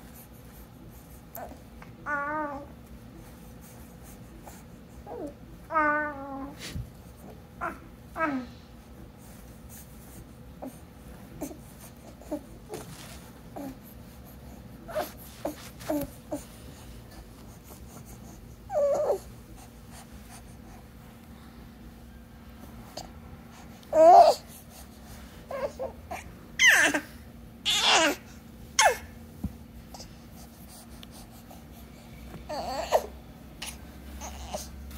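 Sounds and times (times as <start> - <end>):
baby cooing and squealing: 25.5 - 27.1, 27.7 - 28.2.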